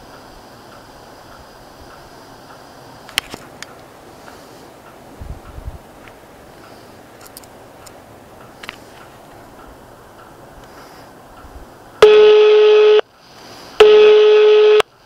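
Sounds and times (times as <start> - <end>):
telephone ringback tone: 12.0 - 13.0, 13.8 - 14.8
telephone line hiss: 12.0 - 15.0.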